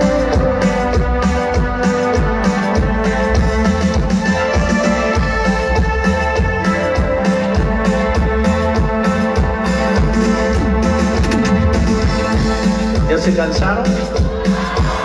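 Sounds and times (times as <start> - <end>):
drum kit: 0.0 - 15.0
keyboards: 0.0 - 15.0.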